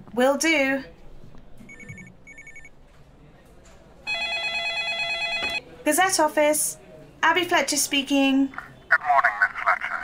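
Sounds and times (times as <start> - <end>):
telephone ringing: 1.7 - 2.7, 4.1 - 5.7.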